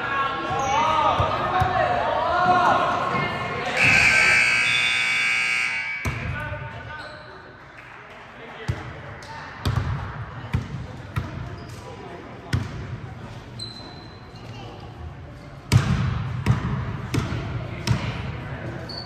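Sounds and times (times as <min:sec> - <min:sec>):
scoreboard buzzer: 0:03.8 - 0:06.2.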